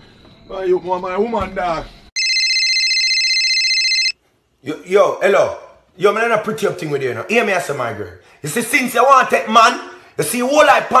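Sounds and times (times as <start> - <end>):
electronic telephone ringing: 2.2 - 4.2.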